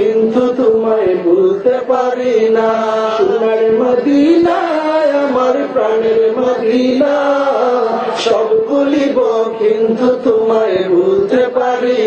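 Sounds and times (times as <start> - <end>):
man singing into microphone: 0.0 - 12.0.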